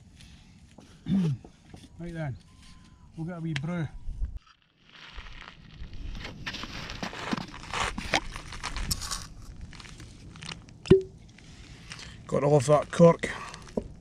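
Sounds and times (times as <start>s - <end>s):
cork crunching and scraping: 6.2s - 14.0s
cork squeaky pop: 10.9s - 11.1s.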